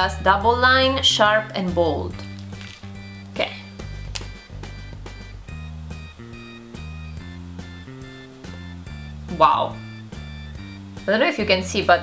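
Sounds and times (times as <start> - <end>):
plucked music with bass and beat: 2.1 - 12.0.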